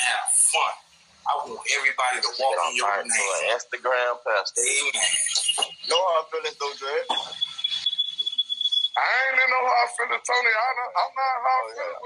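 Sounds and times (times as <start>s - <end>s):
speech: 0.0s - 7.4s, 9.0s - 12.0s
high-pitched electronic tone: 2.0s - 3.5s, 4.6s - 12.0s.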